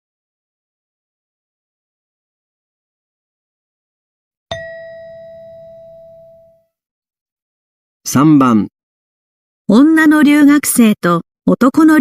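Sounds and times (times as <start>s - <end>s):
bell-like chime ringing: 4.5s - 6.7s.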